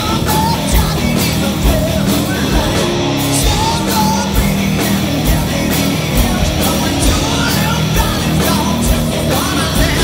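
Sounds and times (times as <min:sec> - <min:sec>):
bass guitar: 0:00.0 - 0:10.0
distorted electric guitar: 0:00.0 - 0:10.0.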